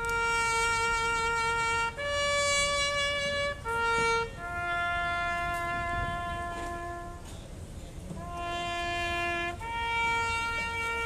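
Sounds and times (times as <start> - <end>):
solo trumpet call: 0.0 - 7.4, 8.1 - 11.0.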